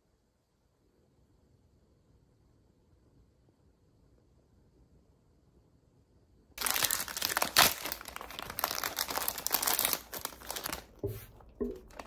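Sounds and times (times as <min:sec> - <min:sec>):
plastic wrapper crinkling and tearing: 0:06.6 - 0:12.0.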